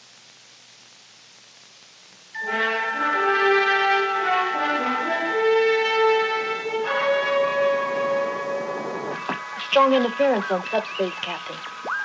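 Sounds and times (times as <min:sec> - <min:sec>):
orchestral brass fanfare: 0:02.4 - 0:09.1.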